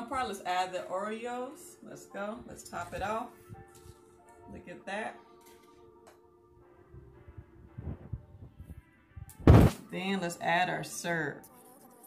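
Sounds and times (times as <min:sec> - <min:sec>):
heavy thump: 0:09.3 - 0:09.8.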